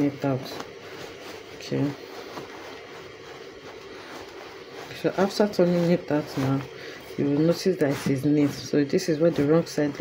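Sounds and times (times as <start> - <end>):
fabric rustling: 0.0 - 10.0.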